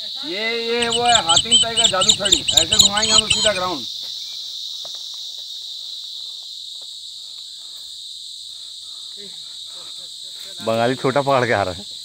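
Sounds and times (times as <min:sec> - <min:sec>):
insects buzzing: 0:00.0 - 0:05.2
faint ticks: 0:00.8 - 0:03.7.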